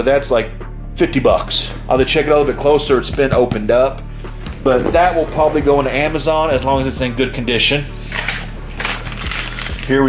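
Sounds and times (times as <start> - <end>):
plastic packaging crinkling: 8.1 - 10.0.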